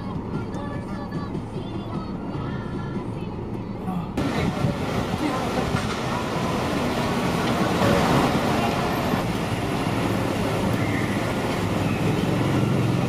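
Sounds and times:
road traffic noise: 0.0 - 13.0.

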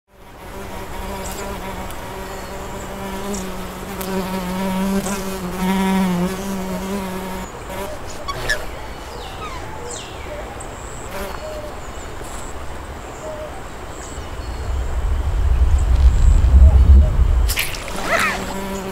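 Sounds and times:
fly buzzing: 0.1 - 8.8, 14.2 - 18.9.

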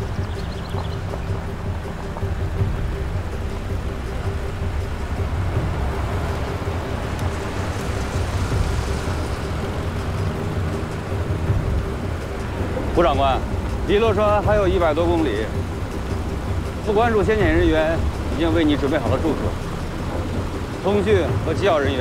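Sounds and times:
vehicle engines rumbling: 0.0 - 22.0.

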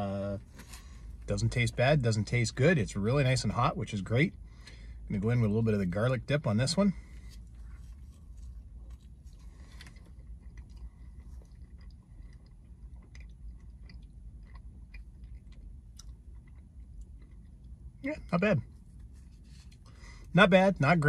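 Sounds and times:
steady low hum: 0.0 - 21.0
man chewing pizza: 6.8 - 20.3.

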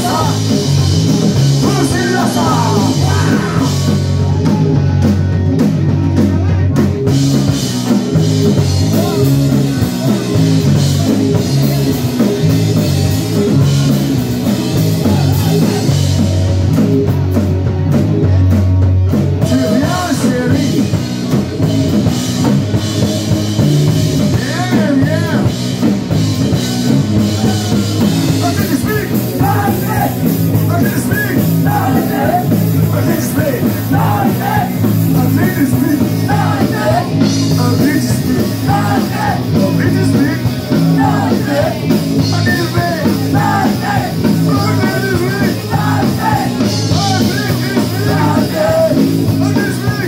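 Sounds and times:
bass guitar: 0.0 - 50.0
drum kit: 0.0 - 50.0
electric guitar: 0.0 - 50.0
person singing: 1.6 - 4.8, 19.4 - 21.0, 30.9 - 50.0.

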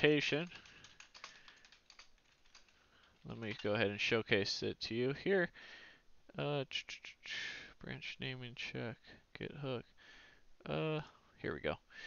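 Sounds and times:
keyboard typing: 0.0 - 4.0.

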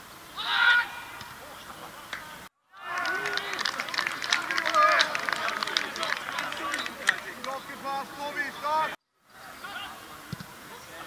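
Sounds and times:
people shouting and cheering: 2.2 - 10.1.

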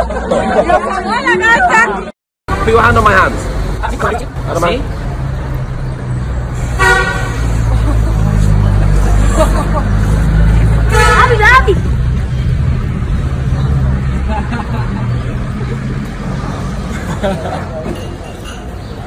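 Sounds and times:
vehicle engine rumbling: 2.5 - 19.0
car horn toot: 6.8 - 7.4, 10.9 - 11.6.

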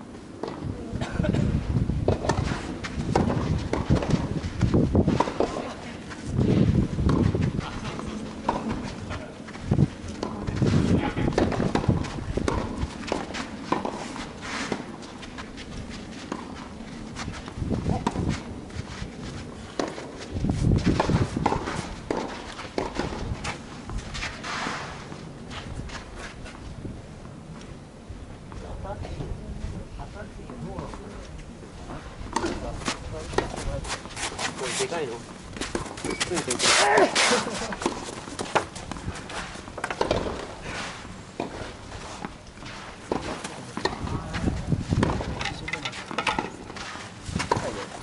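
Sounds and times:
wind rumble on microphone: 0.5 - 13.3, 15.4 - 24.4, 25.3 - 34.0, 41.5 - 45.9, 46.6 - 48.0
footsteps on court: 2.1 - 26.8, 32.3 - 48.0.

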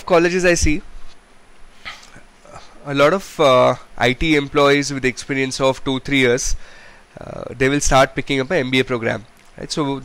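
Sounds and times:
man speaking: 0.0 - 0.8, 2.5 - 6.6, 7.2 - 10.0.

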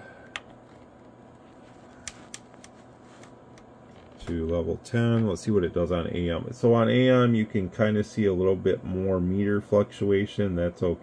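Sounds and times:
low steady background hiss: 0.0 - 11.0.

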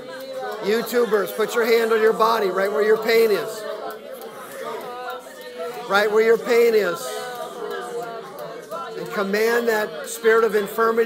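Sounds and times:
chatter of voices: 0.0 - 11.0
people praying aloud: 0.0 - 11.0
man's loud voice: 0.4 - 3.8, 5.6 - 11.0.

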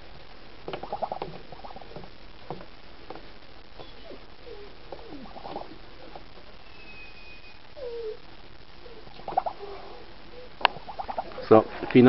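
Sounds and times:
soft wavering animal calls: 3.8 - 11.5.

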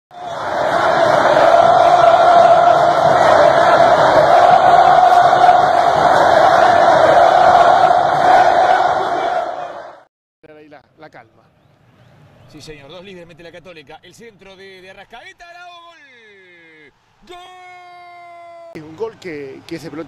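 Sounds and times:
football crowd chanting: 0.1 - 10.1.

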